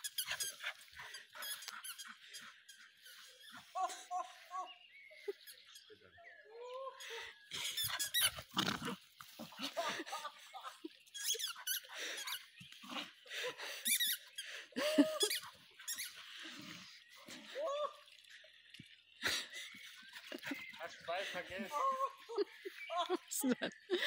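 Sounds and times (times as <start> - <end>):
squeaky toy squeaking: 0.0 - 0.6, 1.4 - 2.1, 7.6 - 8.5, 11.2 - 12.4, 13.8 - 14.2, 15.2 - 16.2.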